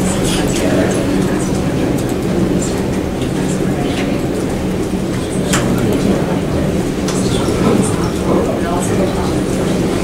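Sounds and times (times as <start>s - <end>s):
murmuring voices: 0.0s - 10.0s.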